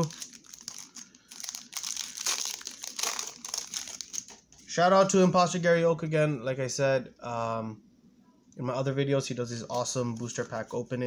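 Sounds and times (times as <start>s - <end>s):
foil wrapper crinkling: 0.0s - 4.5s.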